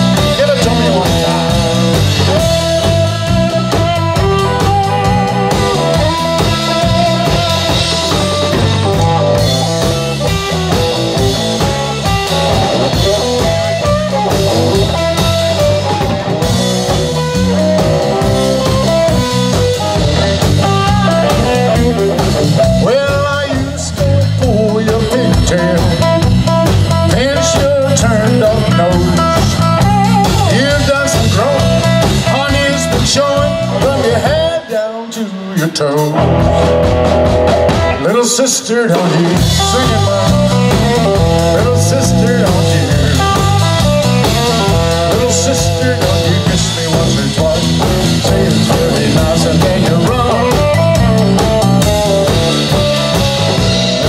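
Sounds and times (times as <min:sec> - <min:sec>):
bass guitar: 0:00.0 - 0:54.0
drum kit beat: 0:00.0 - 0:54.0
electric guitar lead with bent notes: 0:00.0 - 0:54.0.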